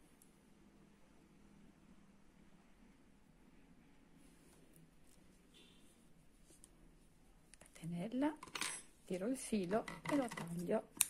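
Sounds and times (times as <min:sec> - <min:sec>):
woman speaking: 0:07.6 - 0:08.4, 0:09.1 - 0:11.0.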